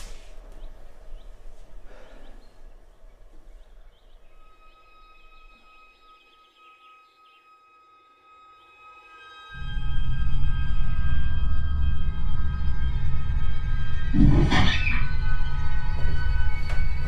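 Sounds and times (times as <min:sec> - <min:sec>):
birds chirping: 0:00.0 - 0:07.8
film score drone: 0:03.8 - 0:17.0
loud low rumble: 0:09.6 - 0:17.0.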